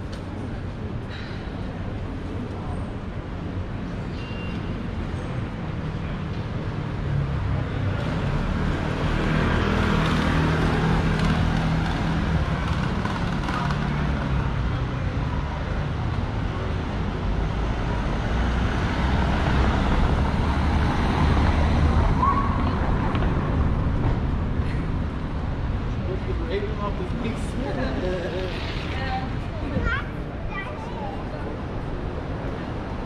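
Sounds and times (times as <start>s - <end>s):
vehicles on cobblestone street: 0.0s - 33.0s.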